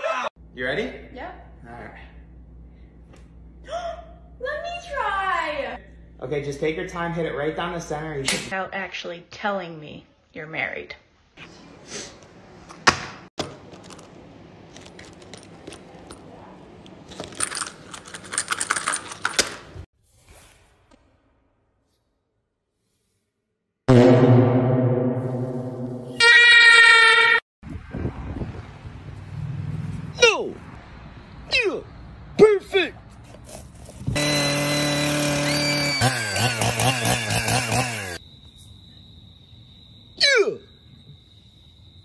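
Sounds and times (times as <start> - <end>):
hard items clattering on stone: 17.0 - 19.8.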